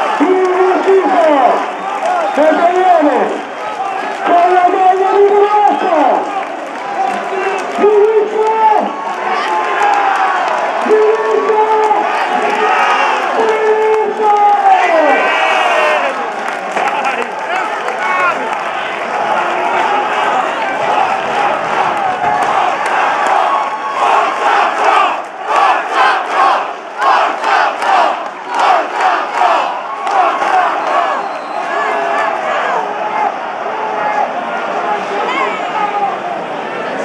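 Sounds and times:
crowd cheering: 0.0s - 37.0s.

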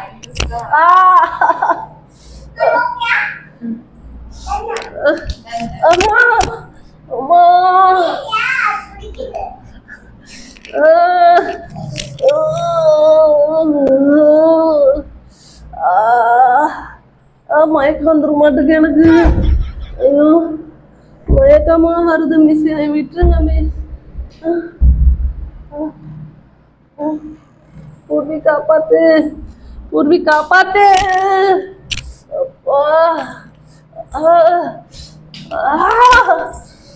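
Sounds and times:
woman moaning: 10.7s - 15.0s, 15.8s - 17.0s.

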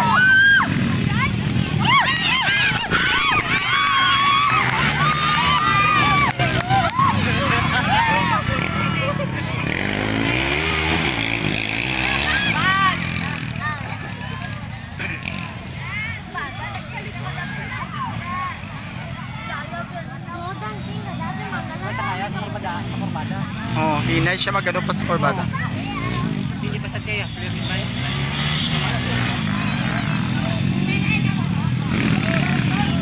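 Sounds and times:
racing motorcycle engines revving: 0.0s - 33.0s
spectators shouting and chatting: 0.0s - 33.0s.

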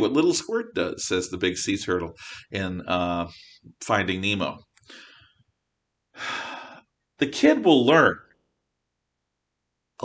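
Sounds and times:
man sighing loudly: 6.2s - 6.8s.

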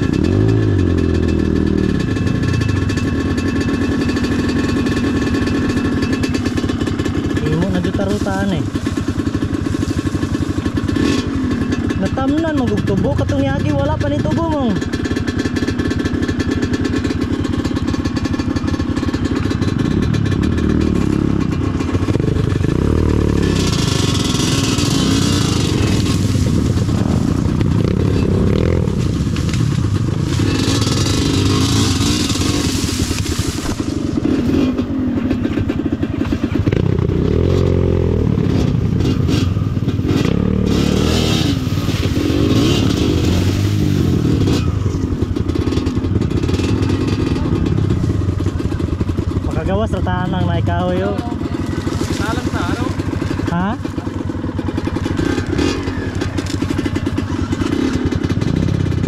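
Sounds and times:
two-stroke motorbike engine revving: 0.0s - 59.0s
dry cane scraping against bike: 3.4s - 12.0s, 21.8s - 37.6s, 38.4s - 49.6s, 51.0s - 58.9s.

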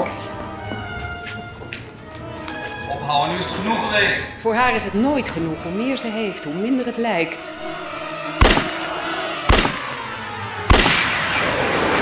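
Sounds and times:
music: 0.0s - 10.4s
pistol shots: 8.4s - 8.8s, 9.5s - 10.0s, 10.7s - 11.5s.

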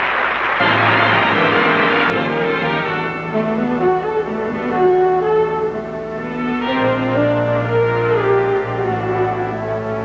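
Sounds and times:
orchestral held chords: 0.6s - 10.0s.

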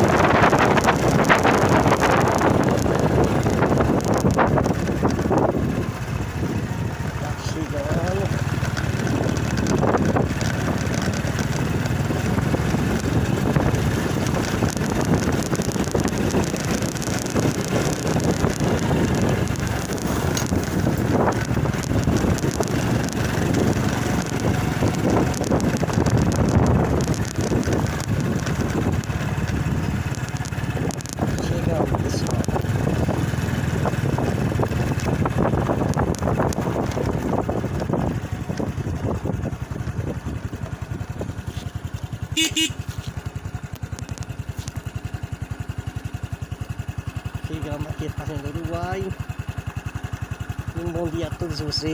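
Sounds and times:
wind on microphone: 0.0s - 6.0s, 8.9s - 41.6s
small motorcycle engine running: 0.0s - 51.9s.

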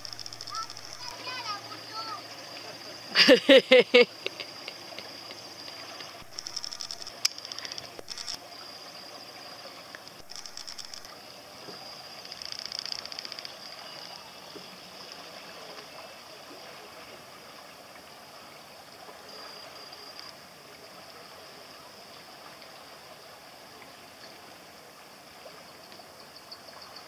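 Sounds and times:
fast buzzy ticking: 0.0s - 2.2s, 6.0s - 8.4s, 10.1s - 11.2s, 12.2s - 13.9s
steady high-pitched tone: 0.0s - 2.2s
water lapping and gurgling: 0.0s - 27.0s.

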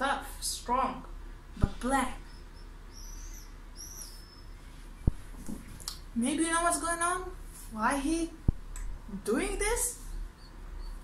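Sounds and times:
low room hum: 0.0s - 11.0s
small bird chirping: 2.1s - 5.2s, 10.1s - 11.0s.

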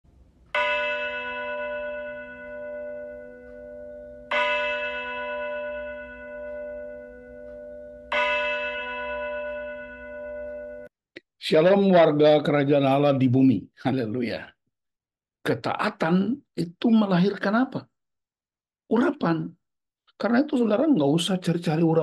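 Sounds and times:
bell ringing: 0.6s - 10.9s.

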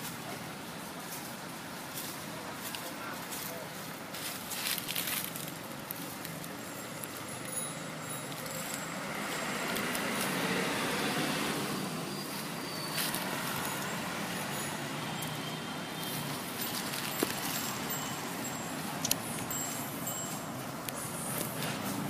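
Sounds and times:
road traffic passing: 0.0s - 22.0s.

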